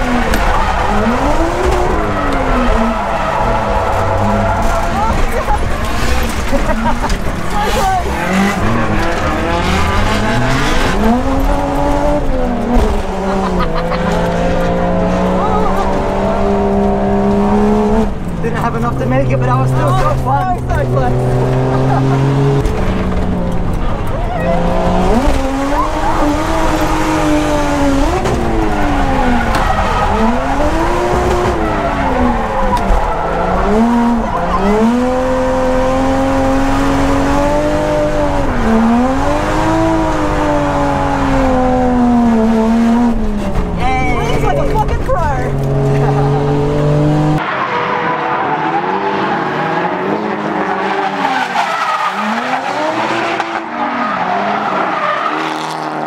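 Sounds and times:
tyres squealing: 0:00.0 - 0:12.6
car engine revving: 0:00.0 - 0:56.0.

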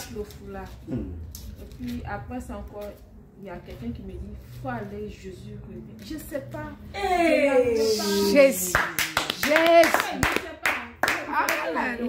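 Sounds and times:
hand clapping: 0:08.7 - 0:12.0.

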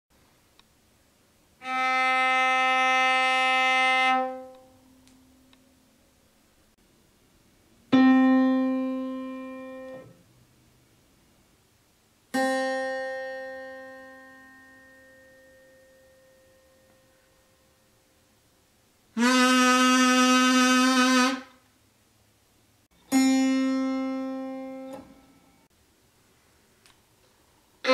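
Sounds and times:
cello bowing sustained note: 0:01.6 - 0:04.7
plucked acoustic guitar note: 0:23.1 - 0:25.6.

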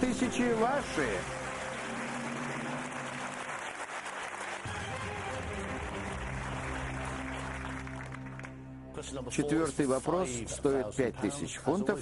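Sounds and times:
studio audience applauding: 0:00.0 - 0:09.0
game-show music: 0:00.0 - 0:12.0
low held synth chord: 0:00.6 - 0:04.0.

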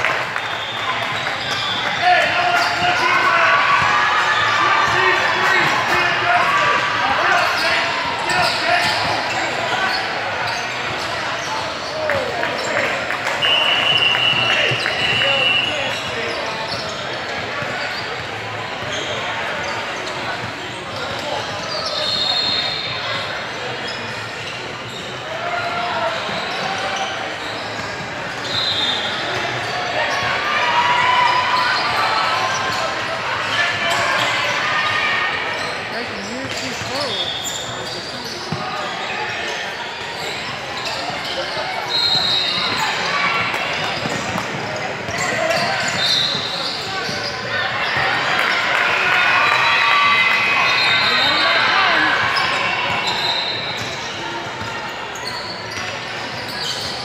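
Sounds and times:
people shouting and talking: 0:00.0 - 0:57.0
sneakers squeaking: 0:00.0 - 0:57.0.

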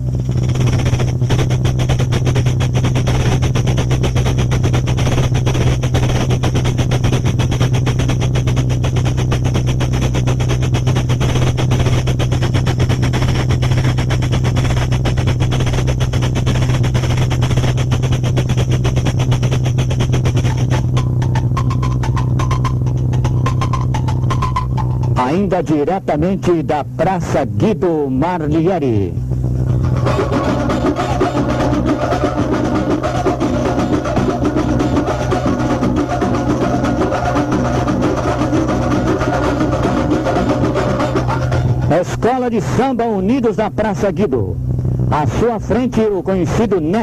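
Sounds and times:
low hum: 0:00.0 - 0:47.0
film projector clatter: 0:00.2 - 0:22.6.

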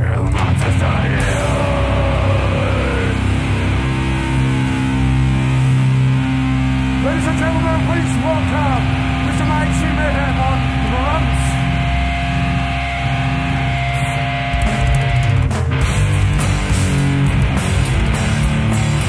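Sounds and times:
sliding bending guitar notes: 0:00.2 - 0:19.0
electric guitar droning chord: 0:00.4 - 0:19.0.

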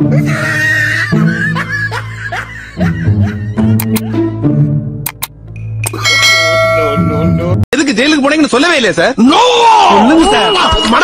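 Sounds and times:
short clicks: 0:03.8 - 0:04.1, 0:05.0 - 0:06.0
metallic strike ringing like bell: 0:06.0 - 0:07.5.

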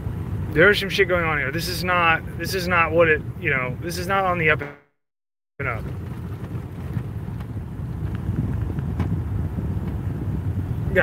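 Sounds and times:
car rumble from inside cabin: 0:00.0 - 0:04.8, 0:05.6 - 0:11.0.

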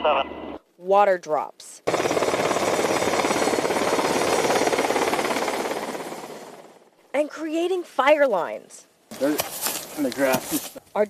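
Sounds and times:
helicopter rotor beating: 0:01.8 - 0:07.0.

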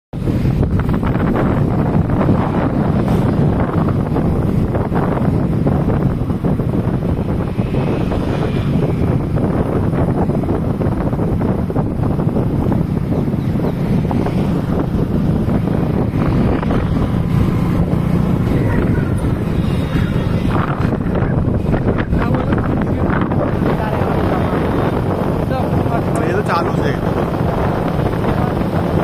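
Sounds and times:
vehicle and road noise: 0:00.1 - 0:29.0
wind buffeting microphone: 0:00.1 - 0:29.0.

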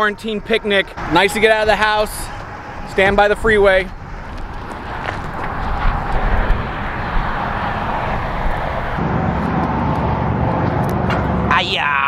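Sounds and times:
wind gusts on microphone: 0:00.0 - 0:11.5
freeway traffic rushing: 0:00.0 - 0:12.0.

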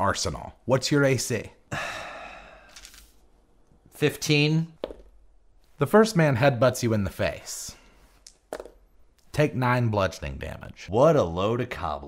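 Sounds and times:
man sighing: 0:01.7 - 0:03.0
faint breath: 0:01.7 - 0:03.2.

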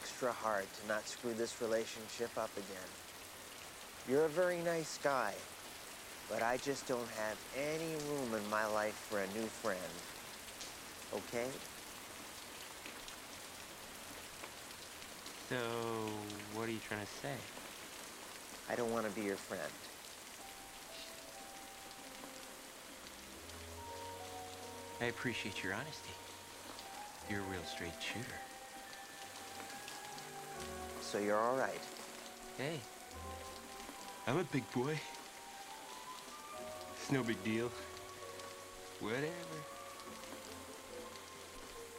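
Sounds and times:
man speaking: 0:00.0 - 0:02.9, 0:04.0 - 0:05.4, 0:06.3 - 0:10.0, 0:11.1 - 0:11.6, 0:15.5 - 0:17.5, 0:18.7 - 0:19.9, 0:24.9 - 0:26.3, 0:27.2 - 0:28.5, 0:30.9 - 0:31.9, 0:32.5 - 0:32.9, 0:34.2 - 0:35.2, 0:37.0 - 0:37.9, 0:39.0 - 0:39.7
steady rain falling: 0:00.0 - 0:41.9
soft sustained music: 0:20.4 - 0:41.9.

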